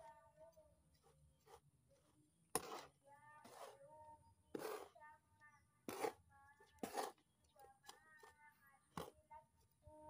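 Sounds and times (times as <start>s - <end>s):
hand tool scraping dry soil: 0.0s - 5.1s, 5.8s - 9.9s.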